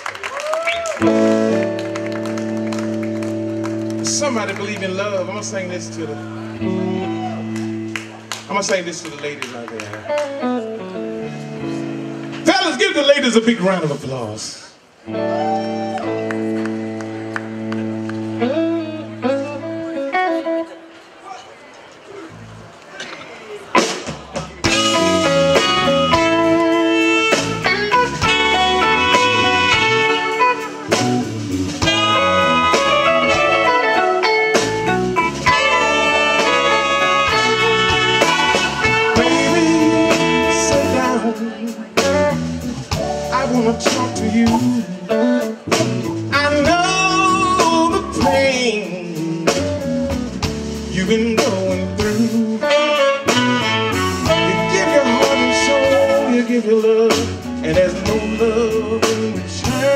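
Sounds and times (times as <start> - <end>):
blues band playing: 0.0 - 59.9.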